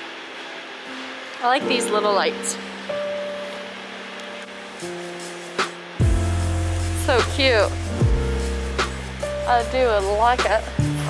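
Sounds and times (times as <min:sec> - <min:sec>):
deep bass note: 0:06.0 - 0:10.9.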